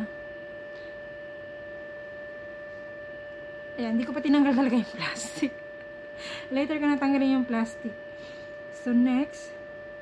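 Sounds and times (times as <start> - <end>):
steady multi-pitch whine: 0.0 - 10.0.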